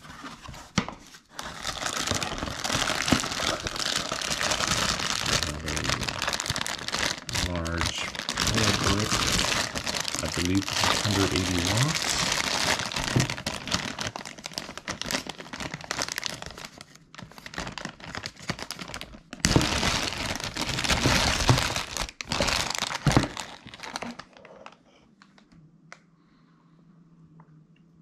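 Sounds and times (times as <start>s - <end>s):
plastic bag crinkling: 1.3s - 25.3s.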